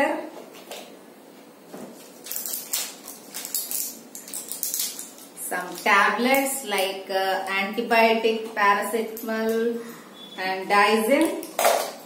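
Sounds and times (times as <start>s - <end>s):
packets rustling and crinkling: 1.8s - 6.4s.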